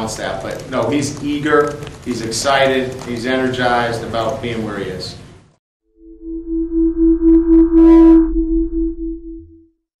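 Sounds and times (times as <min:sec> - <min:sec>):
electronic logo tone: 0:05.9 - 0:09.8
deep low hum: 0:06.0 - 0:09.7.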